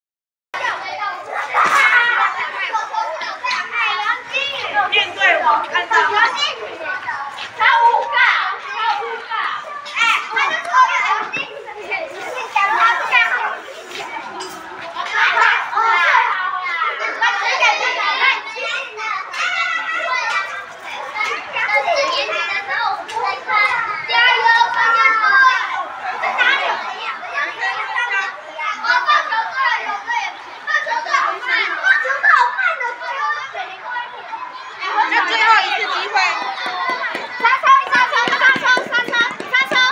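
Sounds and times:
children chattering and calling out: 0.6s - 39.9s.

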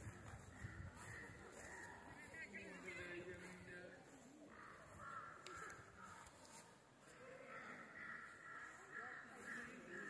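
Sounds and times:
crow cawing faintly: 0.1s - 2.3s, 4.4s - 10.0s.

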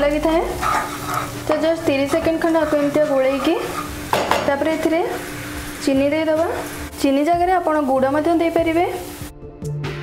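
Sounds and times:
paste sizzling in oil: 0.0s - 9.4s
spatula scraping a wok: 0.2s - 5.8s.

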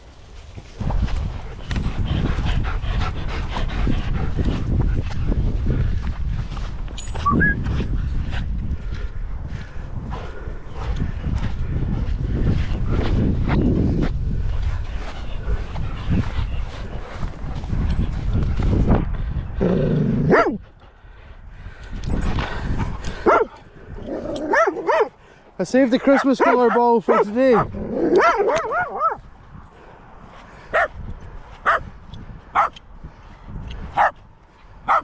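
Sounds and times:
dogs barking: 20.3s - 20.6s, 23.2s - 25.2s, 26.0s - 29.2s, 30.7s - 31.0s, 31.6s - 31.8s, 32.6s - 32.8s, 34.0s - 34.2s.

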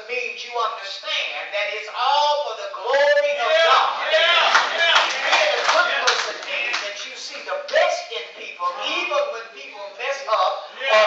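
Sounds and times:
man's voice: 0.0s - 11.0s
audience applause: 4.2s - 6.9s.

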